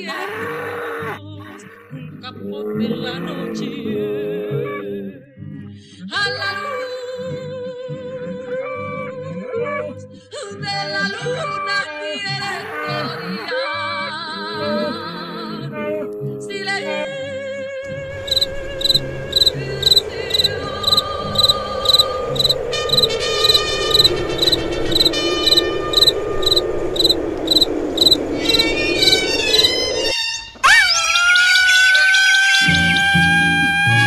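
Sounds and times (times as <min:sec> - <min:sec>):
faint night background: 0:14.4 - 0:34.0
cricket chirping: 0:17.9 - 0:30.1
brass band playing: 0:22.7 - 0:26.4.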